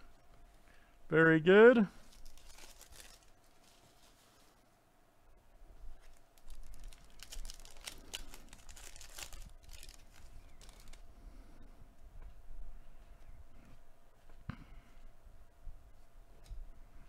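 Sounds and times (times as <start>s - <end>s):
foil wrapper crinkling: 1.9s - 4.7s, 6.0s - 11.0s.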